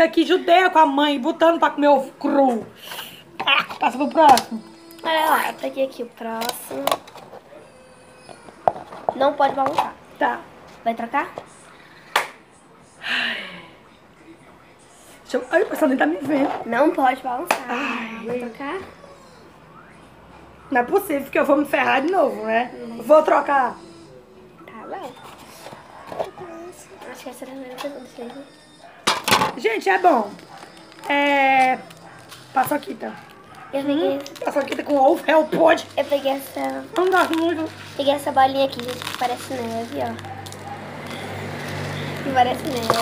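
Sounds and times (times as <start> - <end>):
quiet voices: 11.4 - 15.7, 17.6 - 20.8, 22.1 - 29.0.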